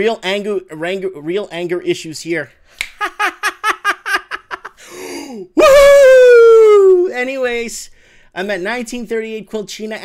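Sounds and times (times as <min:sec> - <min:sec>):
man gasping: 0:04.8 - 0:05.6, 0:07.9 - 0:08.3
man wailing: 0:05.6 - 0:07.2.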